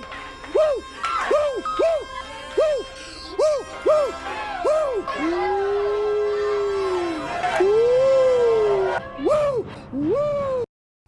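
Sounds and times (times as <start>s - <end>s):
long drawn-out howls: 3.7s - 10.5s.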